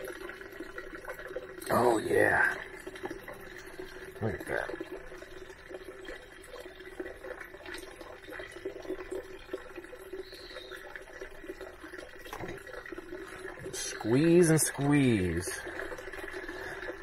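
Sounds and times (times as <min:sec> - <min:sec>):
faint steady hum: 0:00.0 - 0:17.0
juice trickling into bowl: 0:00.0 - 0:17.0.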